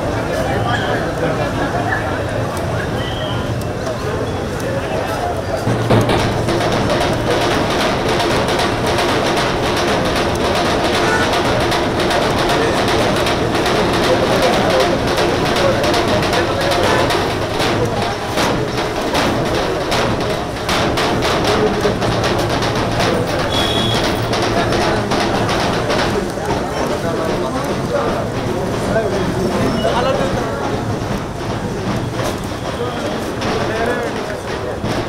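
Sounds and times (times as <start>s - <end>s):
crowd voices: 0.0s - 35.0s
steel street drums beaten with sticks: 0.0s - 35.0s.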